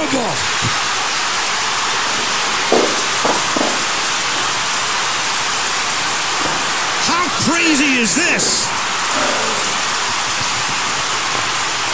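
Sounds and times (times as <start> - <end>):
steady hiss: 0.0 - 11.9.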